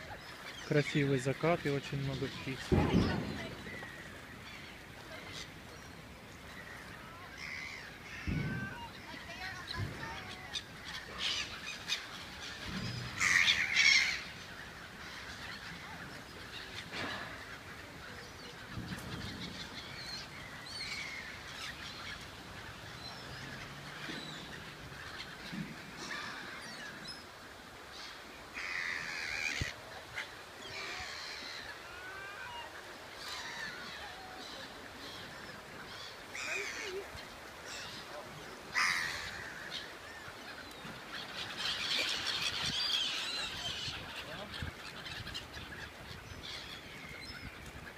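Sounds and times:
gulls calling: 0.0 - 47.9.

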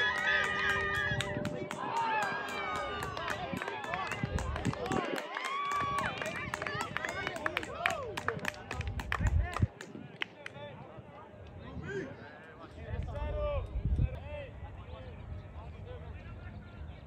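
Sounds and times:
voices shouting: 0.0 - 4.1.

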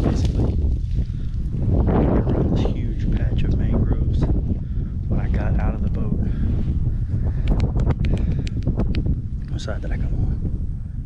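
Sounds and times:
wind buffeting microphone: 0.0 - 11.0
small sharp clicks: 7.4 - 9.1.

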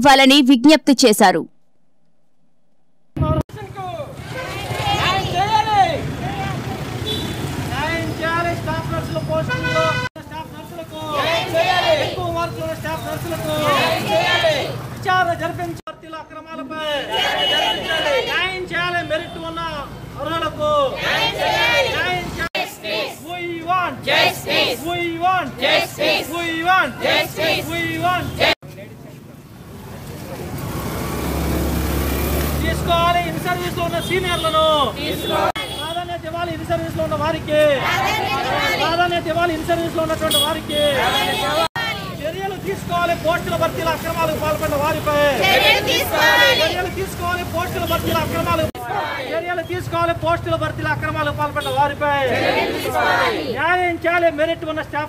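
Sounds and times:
protesters chanting in unison: 4.2 - 6.4, 11.0 - 12.4, 13.1 - 14.9, 16.9 - 18.6, 20.6 - 28.6, 34.8 - 35.6, 37.7 - 39.0, 40.9 - 42.2, 45.1 - 47.3, 48.4 - 49.7, 52.1 - 53.6
vehicle engine rumble passing: 29.6 - 33.9.

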